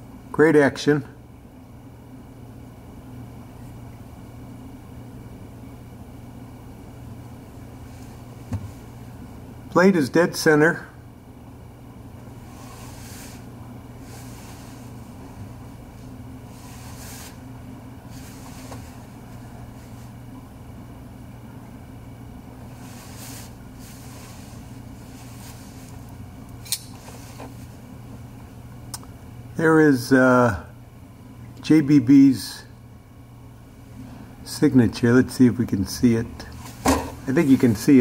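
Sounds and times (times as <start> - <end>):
low room hum: 0.0 - 38.0
soft handling rustles: 7.6 - 9.2, 12.2 - 20.4, 22.6 - 28.0, 36.5 - 38.0
sharp click: 26.6 - 27.0.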